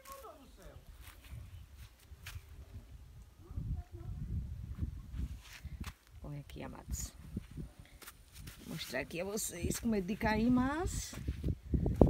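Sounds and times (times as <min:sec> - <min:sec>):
faint voice: 0:00.0 - 0:00.9, 0:03.4 - 0:04.3
footsteps on sand and rock: 0:00.0 - 0:02.5, 0:07.3 - 0:12.0
low rumbling on microphone: 0:02.4 - 0:05.8.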